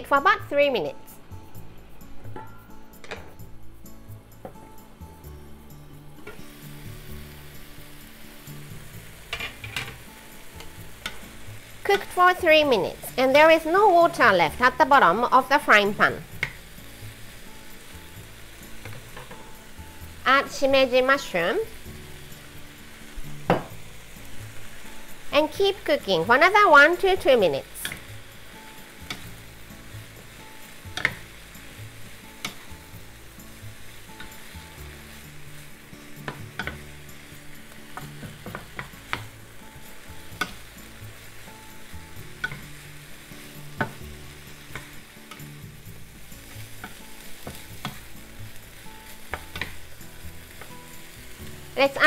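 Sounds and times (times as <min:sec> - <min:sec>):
vegetables sizzling in a frying pan: 0:00.0 - 0:52.0.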